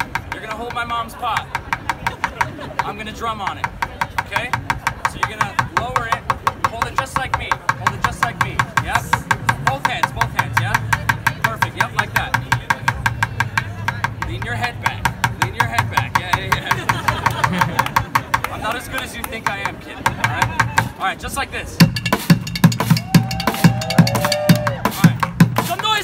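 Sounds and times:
drumstick tapping a pot: 0:00.0 - 0:18.6, 0:21.8 - 0:26.0.

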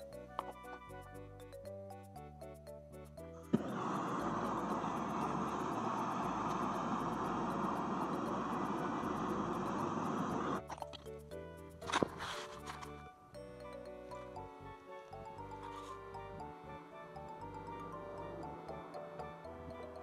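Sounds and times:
blowtorch flame rushing: 0:03.5 - 0:10.6
blowtorch ignition click: 0:03.6 - 0:10.6.

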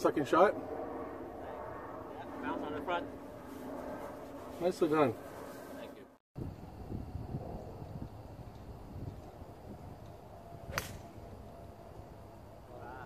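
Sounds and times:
wind rumble on microphone: 0:00.0 - 0:12.8
golf club striking ball: 0:10.7 - 0:11.2.

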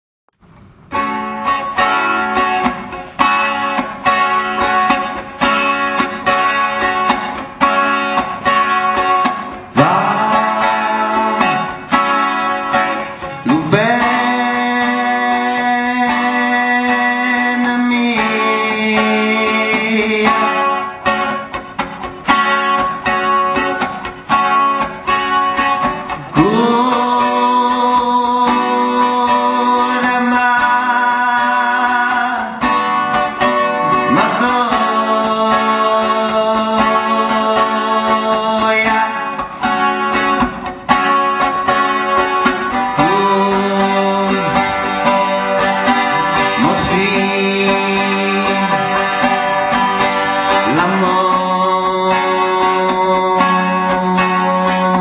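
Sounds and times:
acoustic guitar strumming: 0:00.4 - 0:55.0
man singing long notes: 0:09.7 - 0:21.2, 0:26.2 - 0:39.9, 0:42.2 - 0:55.0.

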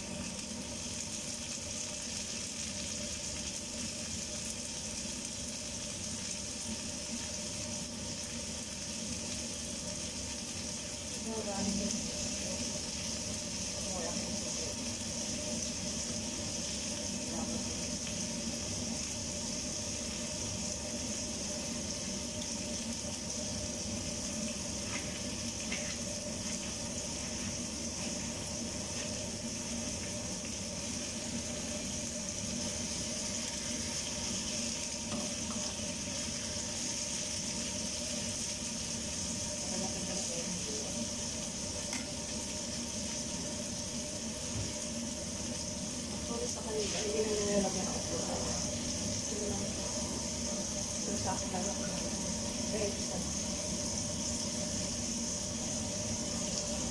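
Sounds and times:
fish and vegetables frying in pan: 0:00.0 - 0:56.9.

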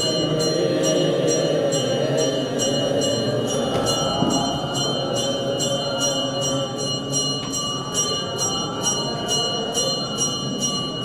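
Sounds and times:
men singing chant: 0:00.0 - 0:07.0.

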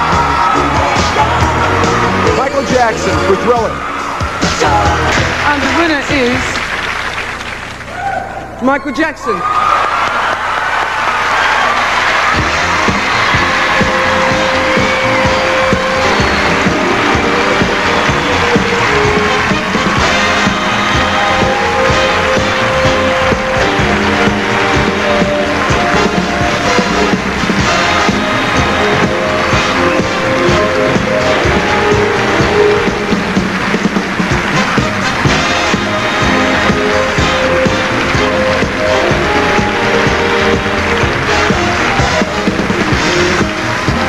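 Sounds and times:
audience cheering and applauding: 0:00.0 - 0:44.0
live band playing up-tempo tune: 0:12.2 - 0:44.0.

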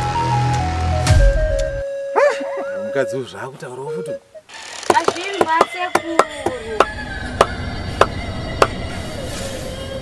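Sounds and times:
sharp percussive knocks: 0:04.8 - 0:08.8.

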